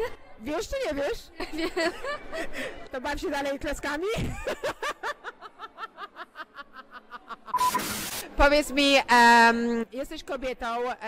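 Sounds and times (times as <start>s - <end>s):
woman laughing: 4.2s - 7.7s
short beep: 7.5s - 8.1s
tv static hiss: 7.5s - 8.4s.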